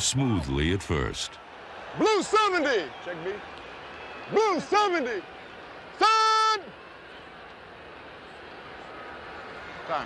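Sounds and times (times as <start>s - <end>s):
stadium crowd hum: 0.0s - 10.0s.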